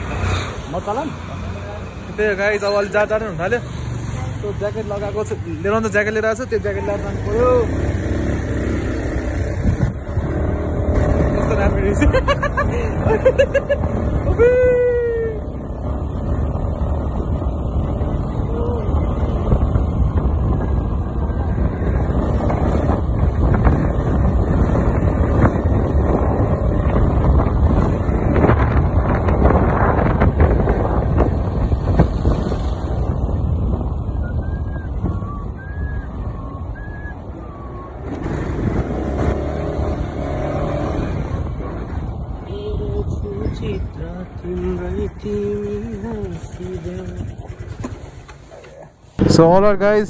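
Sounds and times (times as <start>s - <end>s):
motorcycle engine: 0.0s - 49.4s
road noise: 0.0s - 50.0s
wind rushing over microphone: 8.6s - 45.6s.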